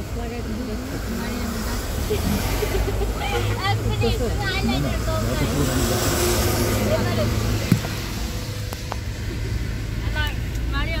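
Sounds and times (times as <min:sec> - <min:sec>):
road noise: 0:00.0 - 0:11.0
vehicle engine rumble: 0:00.0 - 0:11.0.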